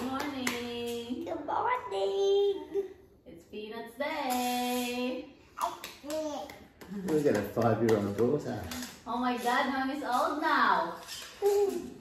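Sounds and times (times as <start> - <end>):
hand clapping: 5.6 - 8.8.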